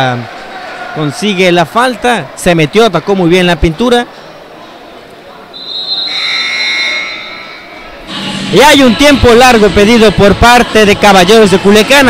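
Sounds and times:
murmur of crowd in hall: 0.0 - 12.0
arena buzzer blaring: 5.6 - 8.6.

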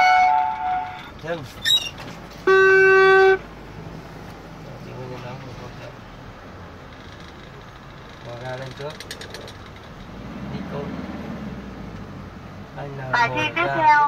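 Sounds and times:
car engine running: 0.4 - 14.0
rattle of sharp clicks: 6.9 - 10.1.

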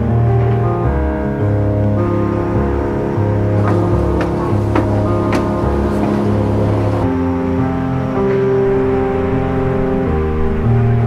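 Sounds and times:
background music with deep bass: 0.0 - 11.0.

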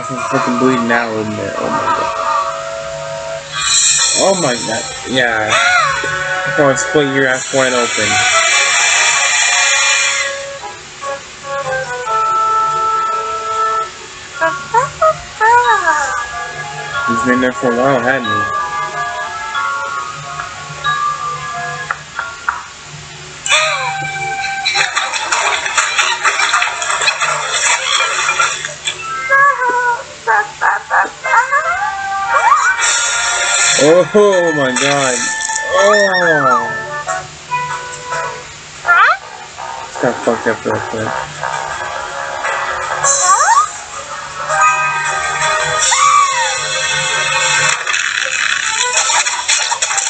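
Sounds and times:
hissing noise: 0.0 - 11.4, 32.7 - 36.8
cartoon music: 0.0 - 22.7, 23.4 - 50.0
cartoon character squeal: 5.5 - 6.1, 32.3 - 33.2, 34.6 - 36.9, 43.0 - 43.8, 45.7 - 47.0
high squeaky yelps and cries: 5.5 - 6.1, 27.6 - 33.4, 35.6 - 36.9, 38.8 - 39.4, 43.0 - 43.9, 45.7 - 47.3.

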